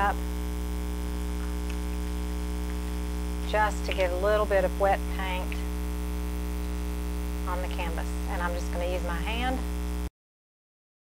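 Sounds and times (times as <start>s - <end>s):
electrical mains hum: 0.0s - 10.1s
faint buzz: 0.0s - 10.1s.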